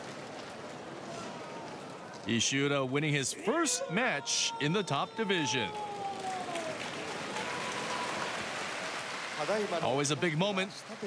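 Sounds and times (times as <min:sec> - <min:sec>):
crowd clapping: 0:04.6 - 0:11.0.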